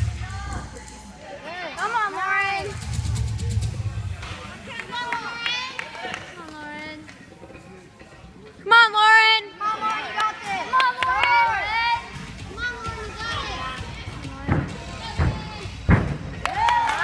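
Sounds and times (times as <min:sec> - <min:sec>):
girls shouting and cheering: 0:08.7 - 0:14.0, 0:16.4 - 0:17.0
heavy thuds on spring floor: 0:14.4 - 0:16.4.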